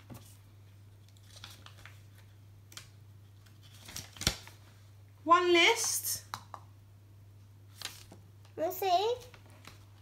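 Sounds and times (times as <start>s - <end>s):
rustling of sticker sheets: 0.0s - 4.6s, 7.7s - 8.2s.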